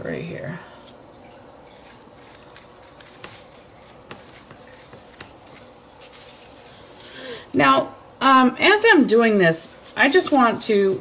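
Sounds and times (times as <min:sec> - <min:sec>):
brush rubbing on paper: 0:01.6 - 0:07.2.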